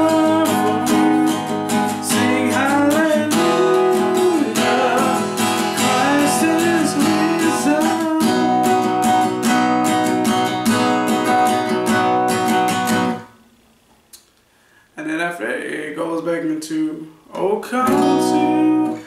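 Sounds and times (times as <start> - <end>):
man singing: 0.0 - 8.7, 15.0 - 19.0
acoustic guitar strumming: 0.0 - 13.5, 17.3 - 19.0.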